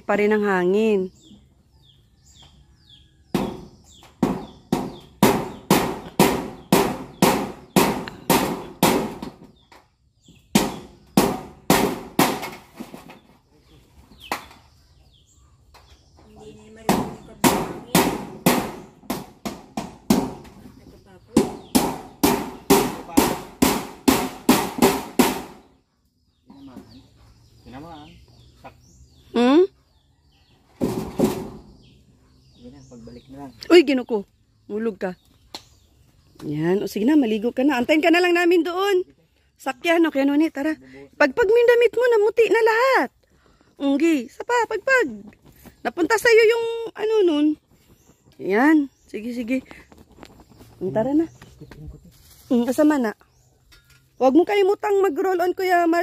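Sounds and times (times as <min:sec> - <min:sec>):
hammer on metal roofing: 0:03.3 - 0:09.4, 0:21.4 - 0:25.6.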